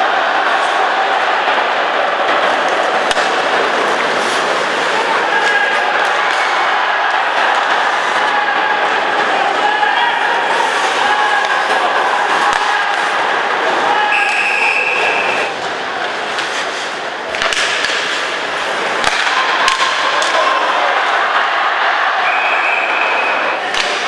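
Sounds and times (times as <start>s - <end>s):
crowd noise: 0.0s - 24.0s
hockey sticks and puck clacking: 0.0s - 24.0s
referee's whistle: 14.1s - 15.5s, 22.2s - 23.5s.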